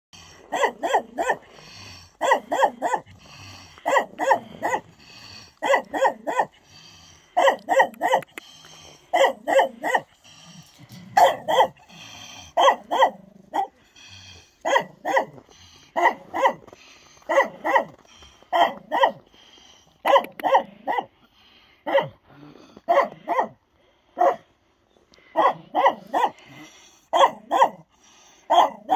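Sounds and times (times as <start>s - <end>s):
dogs barking: 0.2s - 6.6s, 7.3s - 8.4s, 9.0s - 10.2s, 11.0s - 13.8s, 14.6s - 19.3s, 20.0s - 21.1s, 21.8s - 22.2s, 22.9s - 23.6s, 24.2s - 24.5s, 25.2s - 28.9s.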